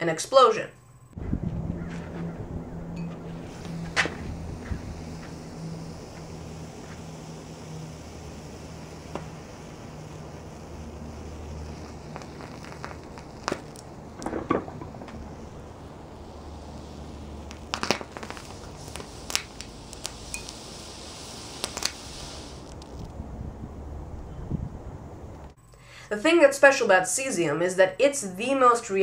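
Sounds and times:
steady low hum: 0:00.7 - 0:26.0
metal popping and crackling in water: 0:11.8 - 0:15.8, 0:17.4 - 0:20.6.

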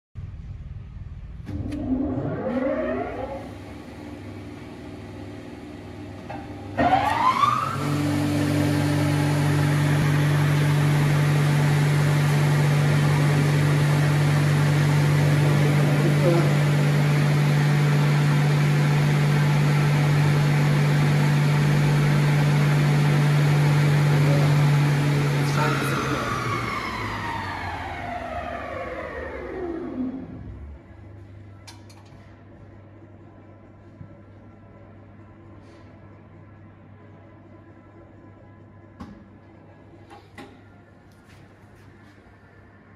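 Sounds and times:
electric motor whining and humming: 0:06.8 - 0:30.6.

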